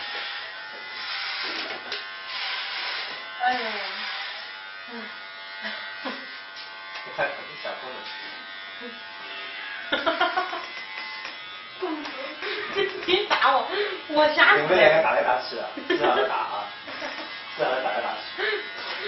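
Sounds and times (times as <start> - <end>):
electric hair clippers buzzing: 0.0 - 19.0.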